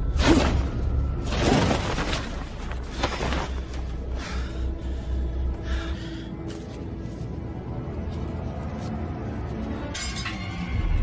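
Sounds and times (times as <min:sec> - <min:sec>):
dark film score: 0:00.0 - 0:11.0.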